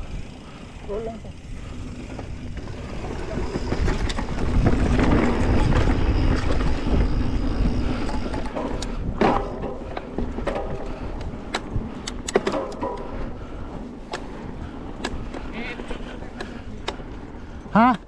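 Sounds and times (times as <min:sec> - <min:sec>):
wind rushing over microphone: 0:00.0 - 0:17.7
bike clicks and rattles: 0:00.0 - 0:18.0
bike rolling on dirt trail: 0:00.0 - 0:18.0.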